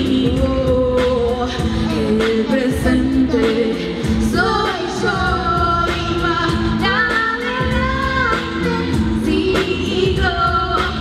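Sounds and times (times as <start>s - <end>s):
girl singing along: 0.0s - 11.0s
pop backing track: 0.0s - 11.0s
woman singing into microphone: 0.0s - 11.0s.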